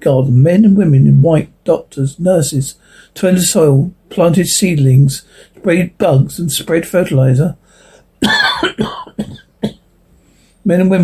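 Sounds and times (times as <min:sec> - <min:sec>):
man coughing: 0:08.2 - 0:09.8.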